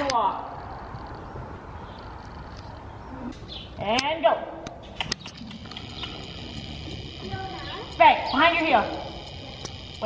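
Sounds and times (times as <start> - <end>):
sharp clicks: 1.9 - 10.0.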